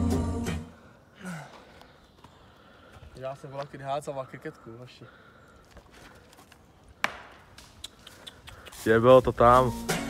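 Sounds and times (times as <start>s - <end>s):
man talking: 8.7s - 9.9s.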